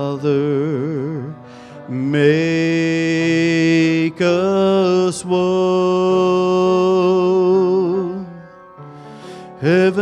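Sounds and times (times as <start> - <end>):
man singing worship song: 0.0 - 8.5, 9.4 - 10.0.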